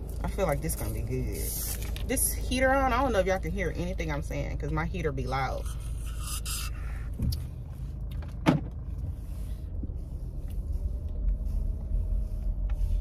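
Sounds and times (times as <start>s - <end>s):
car heater blower running: 0.0s - 13.0s
low rumble: 0.0s - 13.0s.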